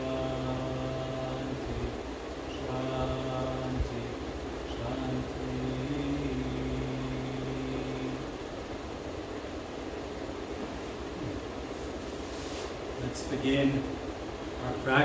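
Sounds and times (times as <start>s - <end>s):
man chanting a low note: 0.0s - 8.3s
room noise: 0.0s - 15.0s.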